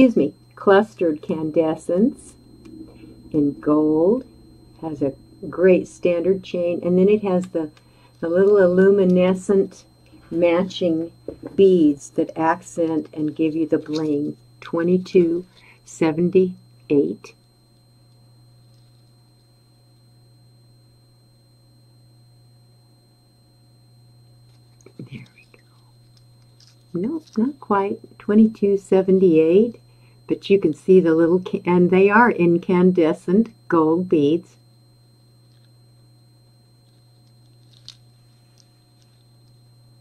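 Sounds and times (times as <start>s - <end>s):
faint high whine: 0.0s - 40.0s
low electrical hum: 0.0s - 40.0s.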